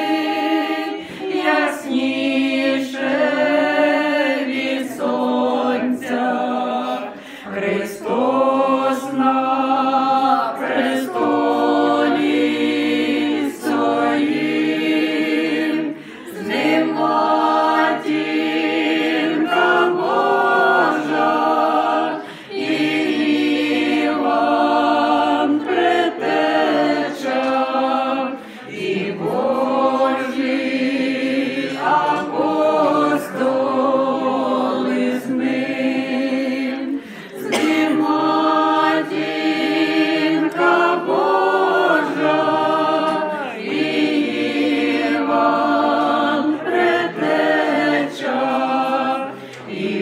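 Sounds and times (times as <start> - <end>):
group singing a cappella: 0.0 - 50.0.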